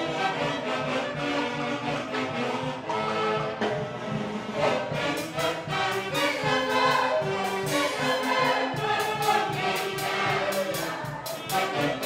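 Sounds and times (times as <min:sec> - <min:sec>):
live band music: 0:00.0 - 0:12.0
saxophones and brass: 0:00.0 - 0:12.0.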